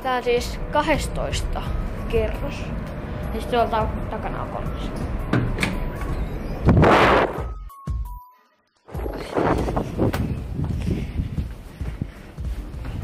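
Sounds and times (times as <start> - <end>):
loud rushing gust: 6.3 - 7.5
wind buffeting microphone: 9.0 - 13.0.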